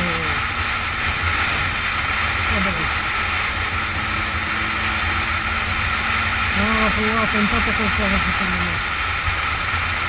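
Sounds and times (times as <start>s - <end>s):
motorcycle engine hum: 0.0s - 10.0s.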